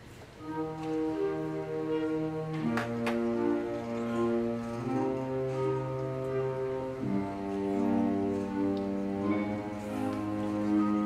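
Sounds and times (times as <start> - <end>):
concert band playing sustained chords: 0.4 - 11.0.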